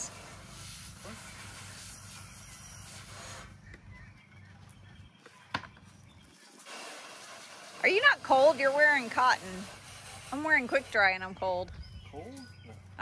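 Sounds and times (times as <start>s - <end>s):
hose spraying water: 0.0s - 3.6s, 6.4s - 11.6s.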